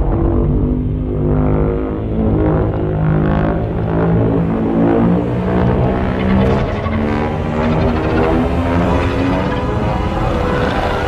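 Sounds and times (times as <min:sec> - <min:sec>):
deep rumble: 0:00.0 - 0:11.0.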